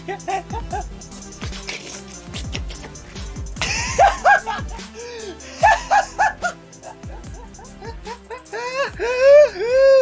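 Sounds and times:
background music: 0:00.0 - 0:10.0
young man laughing loudly: 0:00.0 - 0:10.0.

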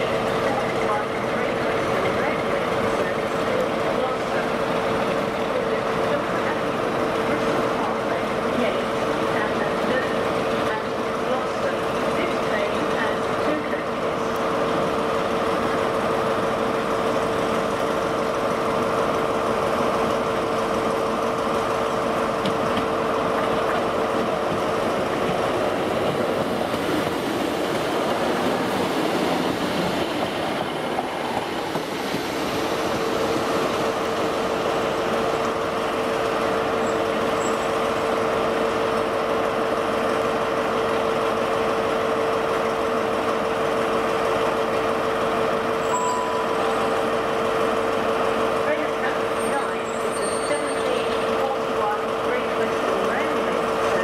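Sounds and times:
diesel train engine drone: 0:00.0 - 0:54.0.

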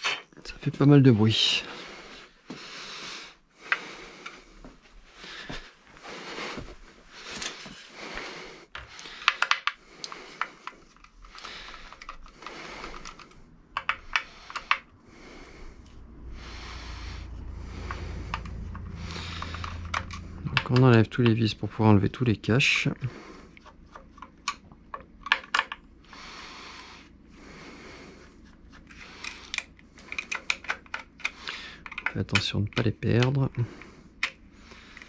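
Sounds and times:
screwdriver clicking in screws: 0:09.2 - 0:14.8, 0:29.2 - 0:33.4
street noise rumble: 0:14.4 - 0:22.3.

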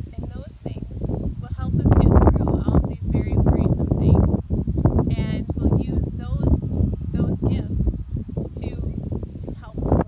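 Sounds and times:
woman speaking: 0:00.0 - 0:04.4, 0:05.1 - 0:10.0
loud uneven low rumble: 0:00.0 - 0:10.0.

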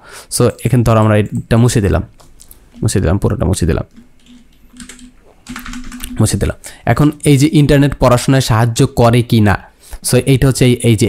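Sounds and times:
computer keyboard keys pressed: 0:03.9 - 0:06.4.

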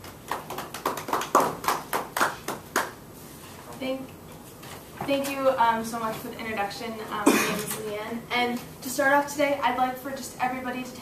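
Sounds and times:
audience clapping: 0:00.0 - 0:03.0
woman speaking: 0:03.7 - 0:04.1, 0:05.0 - 0:11.0.

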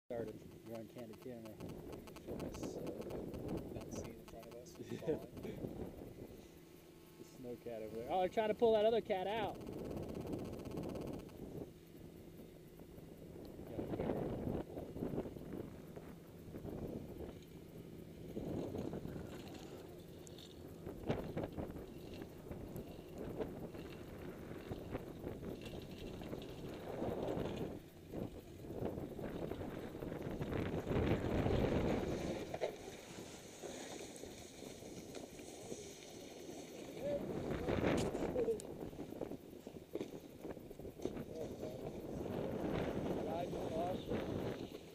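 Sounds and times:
wind on microphone: 0:13.2 - 0:17.4, 0:20.6 - 0:33.5, 0:37.0 - 0:44.9
snowboard scraping over snow: 0:31.2 - 0:37.1.

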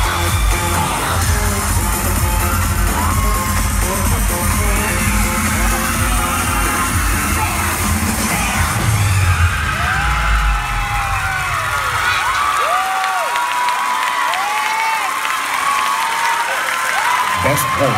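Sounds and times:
pop dance music with heavy bass: 0:00.0 - 0:12.4
crowd cheering and screaming: 0:00.0 - 0:17.9.

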